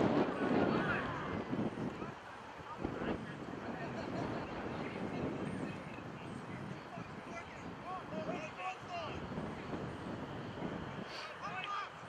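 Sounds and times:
wind rumble on microphone: 0.0s - 11.7s.

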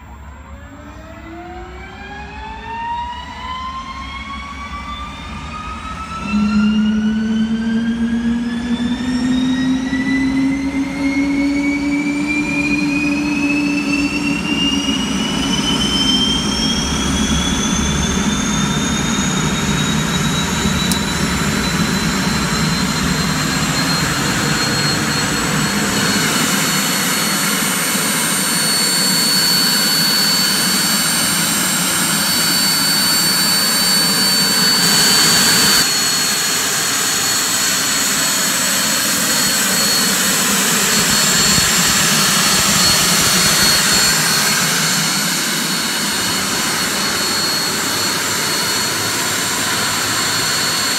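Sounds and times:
helicopter turbine whine: 0.0s - 50.9s.

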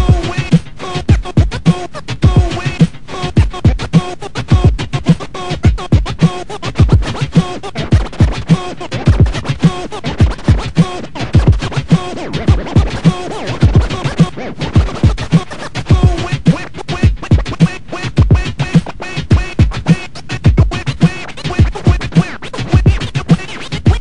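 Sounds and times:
drum beat with low kicks: 0.0s - 24.0s
turntable scratching: 0.0s - 24.0s.

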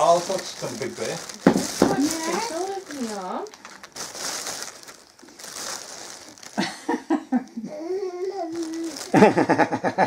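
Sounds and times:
plastic packet rustling: 0.0s - 7.0s, 8.3s - 9.5s
person laughing: 6.5s - 7.7s, 9.0s - 10.0s.

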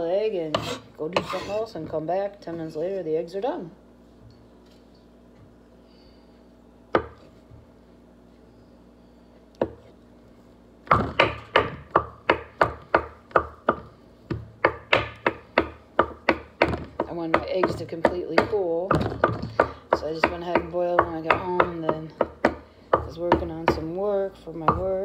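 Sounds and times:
knife chopping on wooden board: 0.5s - 1.6s, 6.9s - 7.3s, 9.6s - 9.9s, 10.9s - 23.9s.

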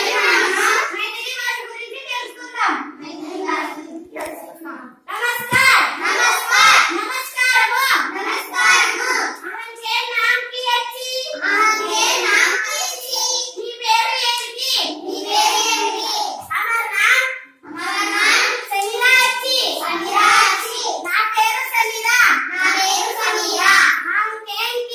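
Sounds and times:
children chanting together: 0.0s - 4.5s, 5.1s - 24.0s.

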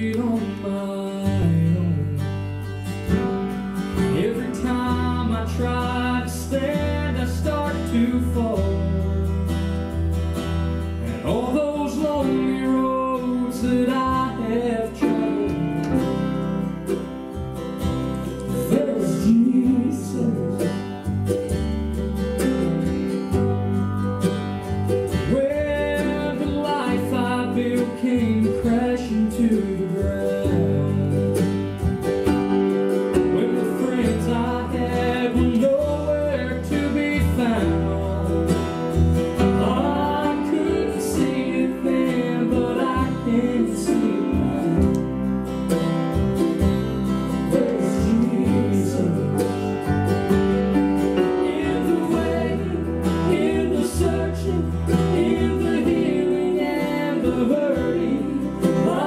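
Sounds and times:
man singing: 0.0s - 2.5s, 3.9s - 9.4s, 11.0s - 16.4s, 18.5s - 21.1s, 25.2s - 31.6s, 33.1s - 45.3s, 47.3s - 49.9s, 51.1s - 59.0s
acoustic guitar: 0.0s - 59.0s
grand piano: 0.0s - 59.0s
mandolin: 0.0s - 59.0s.

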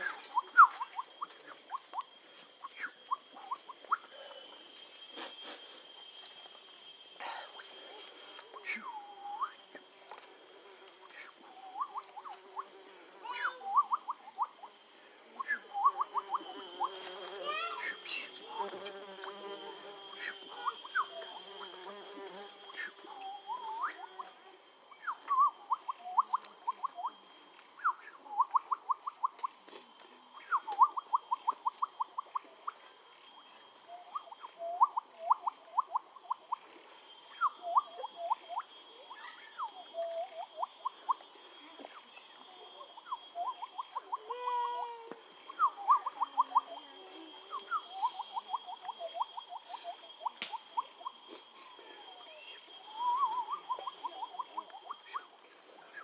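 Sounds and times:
high-pitched insect buzz: 0.0s - 56.0s
animal calling in rising chirps: 11.2s - 14.8s, 15.4s - 29.3s, 37.2s - 51.3s, 52.0s - 55.4s.

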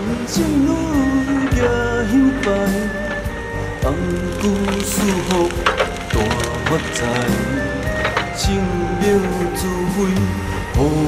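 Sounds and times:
devotional song: 0.0s - 11.0s
sharp cracks: 3.9s - 8.4s.

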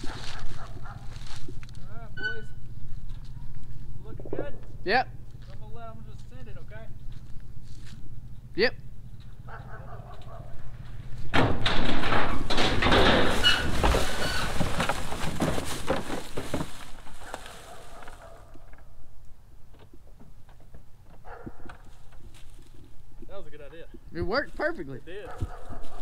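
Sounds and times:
car clattering and scraping off ramps: 11.2s - 18.8s.

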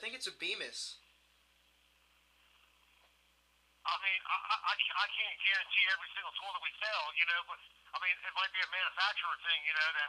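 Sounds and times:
man speaking over phone: 3.8s - 10.0s.

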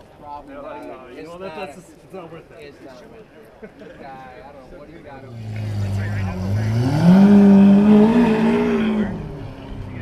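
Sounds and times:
car engine revving then idling: 5.3s - 10.0s.

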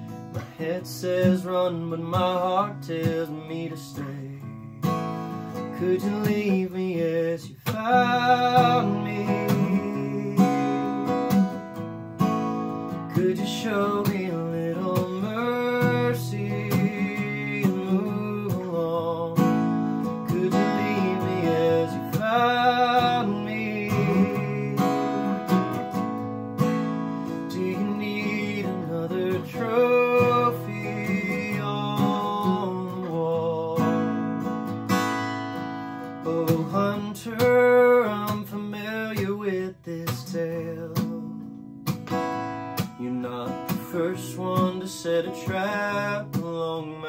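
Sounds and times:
acoustic guitar strummed: 0.0s - 47.0s.

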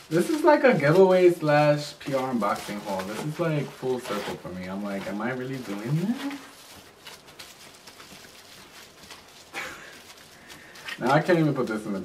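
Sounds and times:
plastic wrap crinkling: 0.0s - 12.0s.

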